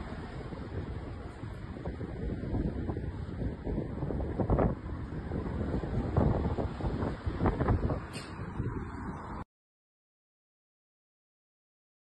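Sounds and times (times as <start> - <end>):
wind buffeting microphone: 0.0 - 9.4.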